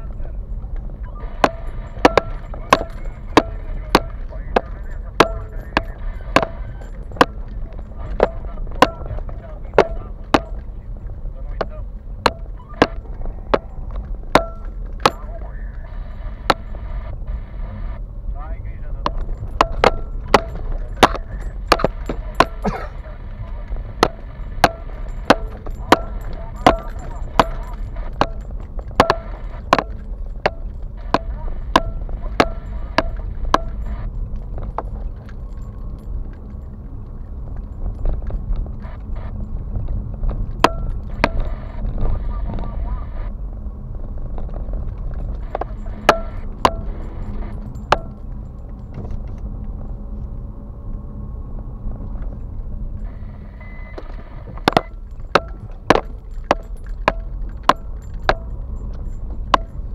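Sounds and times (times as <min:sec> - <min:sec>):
engine and road rumble: 0:00.0 - 0:59.9
car knocks and rattles: 0:19.0 - 0:22.9, 0:23.5 - 0:42.7, 0:43.9 - 0:49.9, 0:54.0 - 0:59.9.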